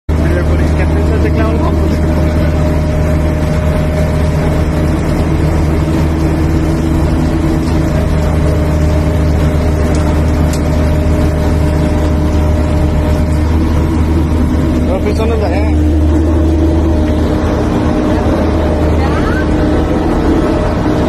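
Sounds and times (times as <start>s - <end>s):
engine low drone: 0.1s - 21.0s
steady tone: 10.8s - 21.0s.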